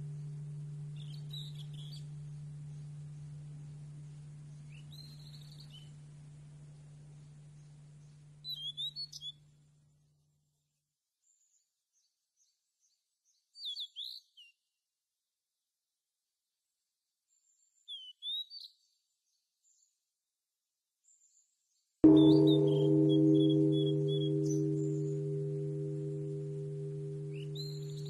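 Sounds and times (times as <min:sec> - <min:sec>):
low music drone hum: 0:00.0 - 0:08.4, 0:22.0 - 0:28.0
small birds chirping: 0:00.0 - 0:09.4.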